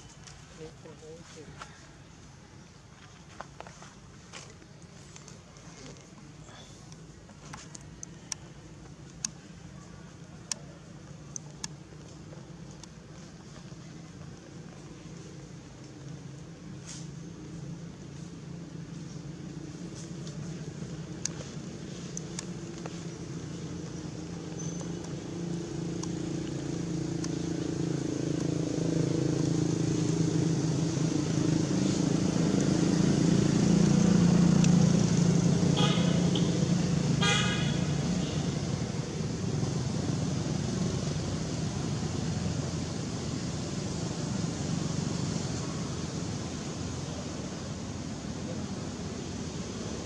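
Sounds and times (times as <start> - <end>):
vehicle engine passing: 16.5 - 50.0.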